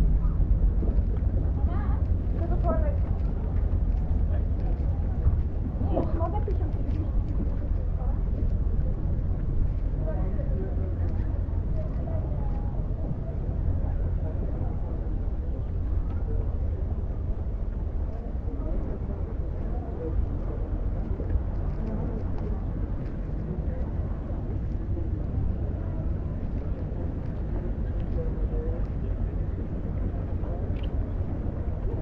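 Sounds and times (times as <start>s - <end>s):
chatter of passers-by: 0.0s - 32.0s
steady low rumble: 0.0s - 32.0s.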